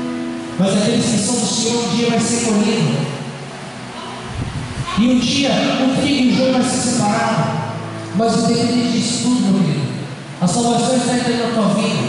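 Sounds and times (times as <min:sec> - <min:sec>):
man preaching through microphone: 0:00.6 - 0:03.3, 0:04.9 - 0:12.0
low sounds into microphone: 0:04.2 - 0:10.4.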